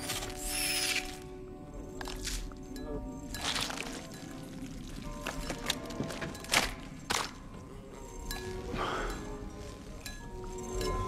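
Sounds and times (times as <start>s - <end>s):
sparse tense music: 0.0s - 11.0s.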